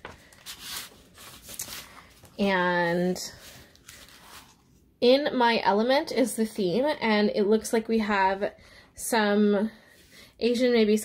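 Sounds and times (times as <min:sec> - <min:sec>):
plastic sleeve and envelope crinkling: 0:00.0 - 0:02.4.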